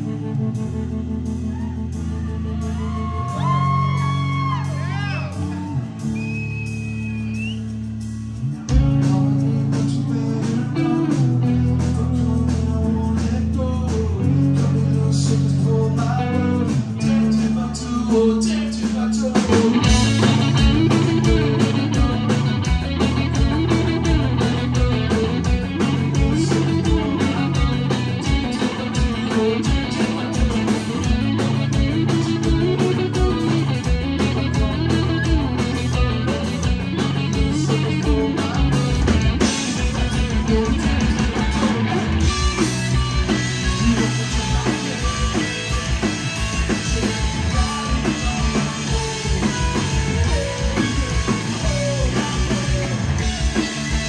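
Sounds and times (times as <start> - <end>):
distorted electric guitars: 0.0 - 54.0
drum kit beating: 0.0 - 54.0.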